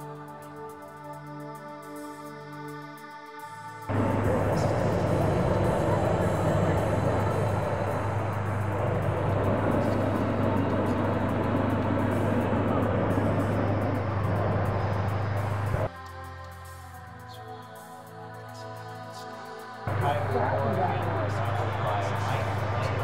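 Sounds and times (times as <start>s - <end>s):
background music: 0.0s - 23.0s
loud steady rushing noise: 3.8s - 15.9s, 19.8s - 23.0s
low hum: 3.9s - 15.9s, 19.9s - 23.0s.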